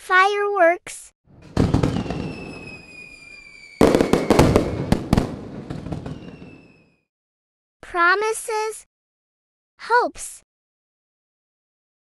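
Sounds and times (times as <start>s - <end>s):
crackling firework pops: 1.4s - 6.6s
firework bursts: 1.4s - 6.9s
falling firework whistle: 1.4s - 7.1s.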